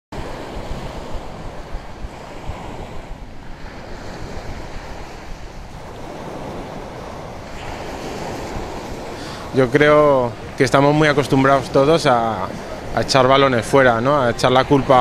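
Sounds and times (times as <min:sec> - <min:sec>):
sea surf washing onto beach: 0:00.1 - 0:15.0
wind buffeting microphone: 0:00.1 - 0:15.0.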